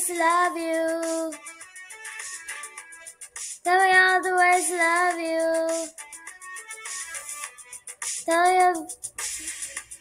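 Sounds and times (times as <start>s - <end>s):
instrumental pop backing track: 0.0s - 10.0s.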